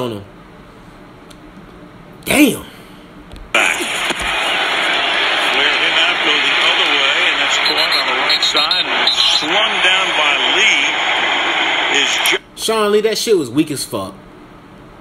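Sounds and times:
stadium crowd noise: 3.6 - 12.4
voices: 3.6 - 12.4.

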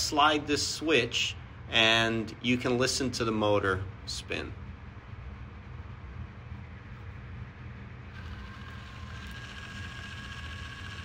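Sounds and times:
low steady hum: 0.0 - 11.0
electric motor whining: 8.1 - 11.0.

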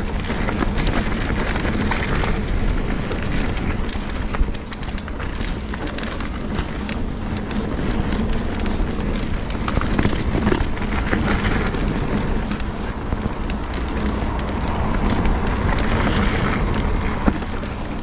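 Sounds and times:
bike rattling clicks: 0.0 - 18.0
bike tyres crackling on dirt: 0.0 - 18.0.

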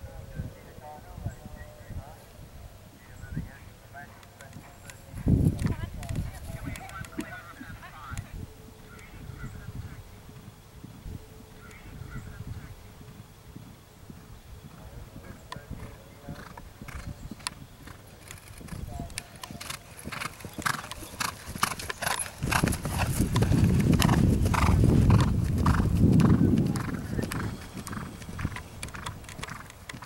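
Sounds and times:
horse hoofbeats on turf: 13.0 - 30.0.

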